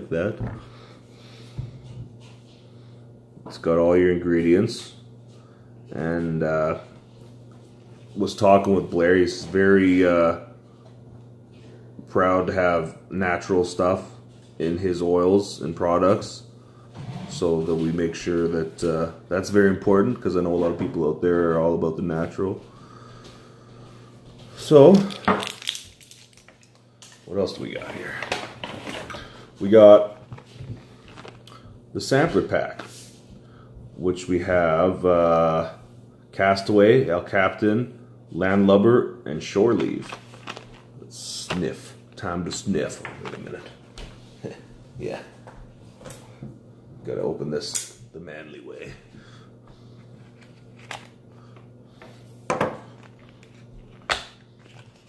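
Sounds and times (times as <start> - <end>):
low steady hum: 0.0 - 55.0
packaging rustling and clicking: 25.0 - 27.2, 30.2 - 31.6, 39.8 - 40.9, 50.3 - 51.2.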